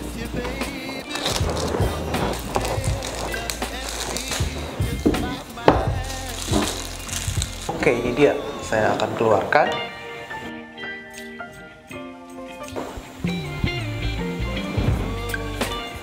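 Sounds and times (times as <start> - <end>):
plastic wrap crinkling and tearing: 0.7 - 9.5.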